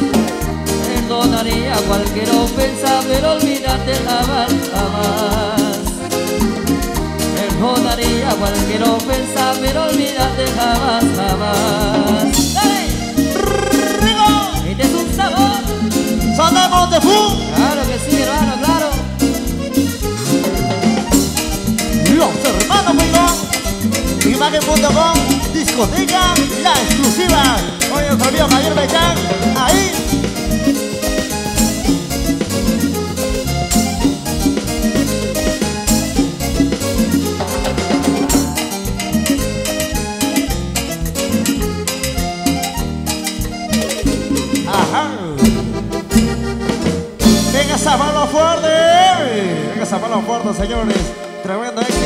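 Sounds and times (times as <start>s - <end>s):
cowbell: 0.0s - 44.9s
electric bass: 0.0s - 49.8s
congas: 0.0s - 52.0s
keyboard: 0.0s - 52.0s
latin dance band playing: 0.0s - 52.0s.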